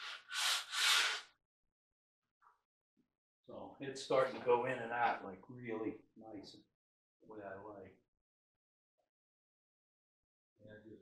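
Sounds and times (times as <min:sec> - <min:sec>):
sandpaper rasping on wood: 0:00.0 - 0:01.2.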